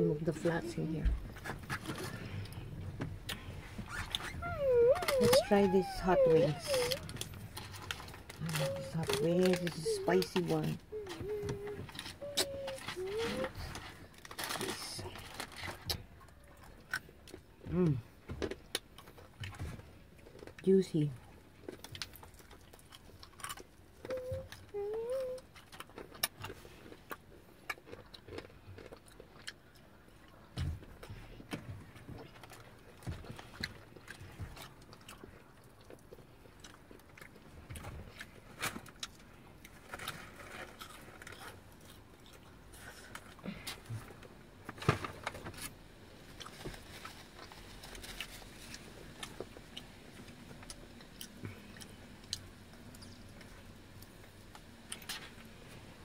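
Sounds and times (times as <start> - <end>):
fried chicken crunching: 21.6 - 24.2, 25.4 - 30.3, 32.1 - 43.8.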